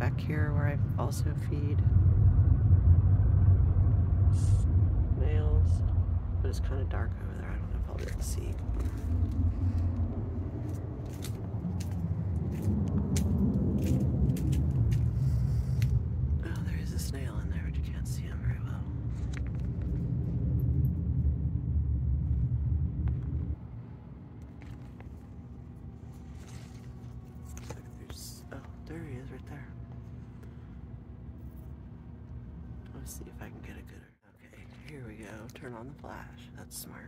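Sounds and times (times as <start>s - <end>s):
steady low rumble: 0.0s - 37.0s.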